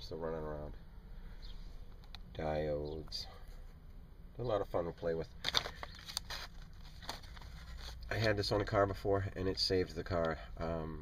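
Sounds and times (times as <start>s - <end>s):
steady low hum: 0.0s - 11.0s
plastic packaging crinkling: 5.4s - 8.3s.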